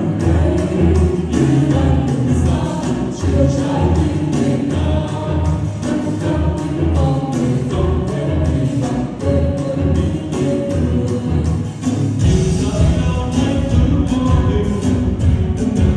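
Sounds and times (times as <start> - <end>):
group of voices singing: 0.0 - 15.9
pop backing track: 0.0 - 15.9
steady drum beat: 0.0 - 15.9.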